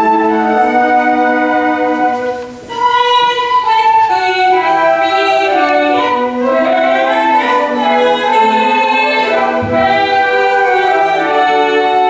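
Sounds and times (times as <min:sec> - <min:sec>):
instrumental ensemble accompanying: 0:00.0 - 0:12.0
woman singing long held notes: 0:00.0 - 0:12.0.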